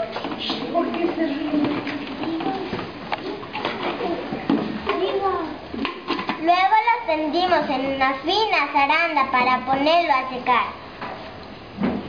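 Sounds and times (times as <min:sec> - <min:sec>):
children talking: 0:00.0 - 0:10.8.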